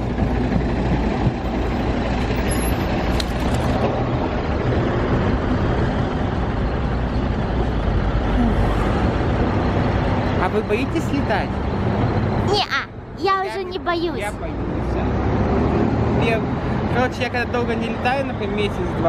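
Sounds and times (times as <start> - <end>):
bus engine idling: 0.0 - 19.0.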